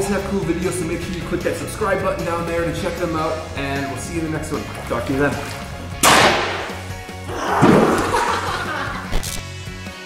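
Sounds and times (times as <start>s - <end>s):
background music: 0.0s - 10.0s
water splashing in pool: 3.9s - 8.6s.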